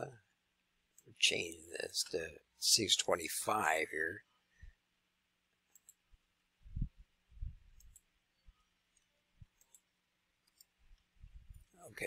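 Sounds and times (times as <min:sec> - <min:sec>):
computer mouse clicks: 0:05.7 - 0:06.0, 0:07.7 - 0:08.1, 0:08.9 - 0:11.7.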